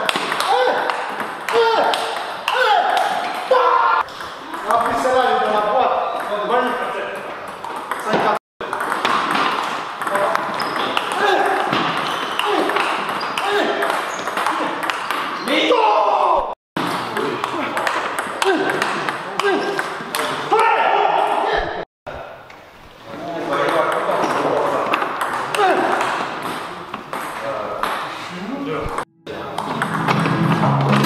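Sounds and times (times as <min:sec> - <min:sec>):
table tennis balls clicking: 0:00.0 - 0:05.6, 0:06.2 - 0:15.4, 0:16.8 - 0:20.3, 0:23.6 - 0:28.1.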